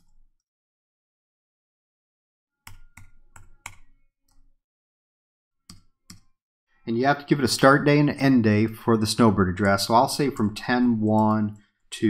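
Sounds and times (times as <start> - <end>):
computer keyboard keystrokes: 2.7 - 4.5.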